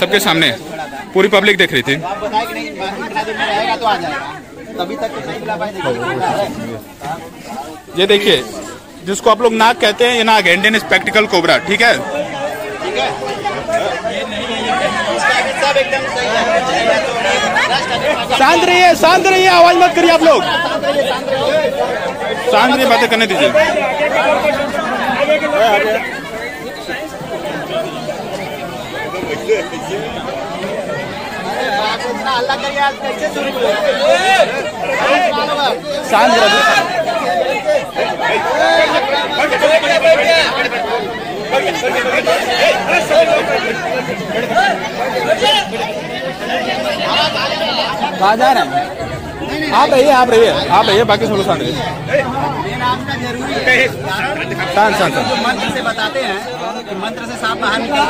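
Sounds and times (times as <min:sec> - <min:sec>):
crowd chattering: 0:00.0 - 0:58.0.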